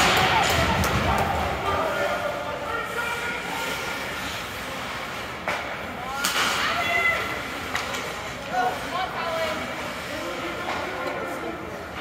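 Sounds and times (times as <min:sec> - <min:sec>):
hockey sticks clacking on puck: 0:00.0 - 0:01.8, 0:03.5 - 0:08.8, 0:10.3 - 0:12.0.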